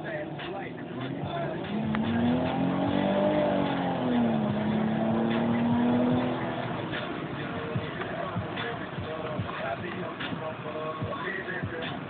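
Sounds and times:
car engine accelerating: 0:00.0 - 0:11.9.

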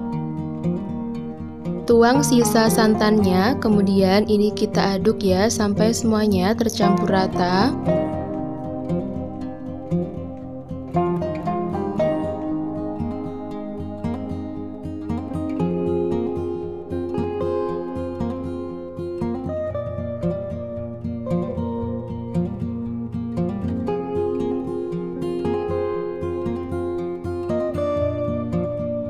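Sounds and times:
plucked guitar-like instrumental music: 0:00.0 - 0:29.0.

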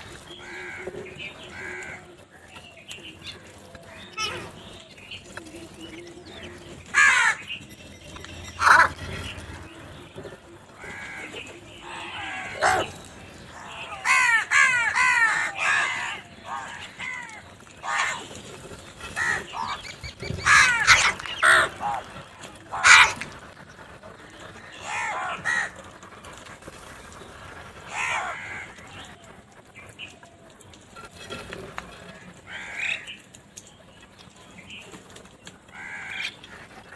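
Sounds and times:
crows cawing: 0:00.2 - 0:02.2, 0:06.9 - 0:07.5, 0:10.7 - 0:18.3, 0:19.0 - 0:23.4, 0:24.6 - 0:26.0, 0:27.9 - 0:29.2, 0:32.1 - 0:33.2, 0:35.7 - 0:36.7.

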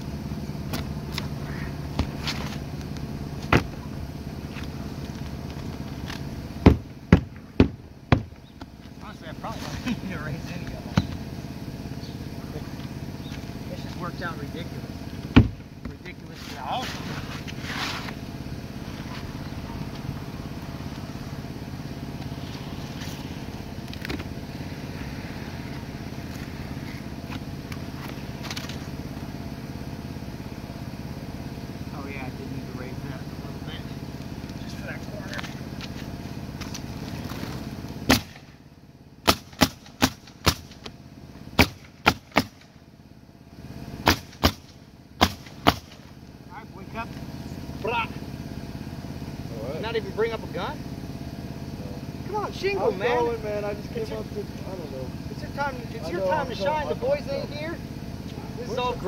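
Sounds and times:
motor drone: 0:00.0 - 0:59.0
nail gun shots: 0:38.1 - 0:38.4, 0:39.2 - 0:40.8, 0:41.6 - 0:42.7, 0:44.0 - 0:46.0.

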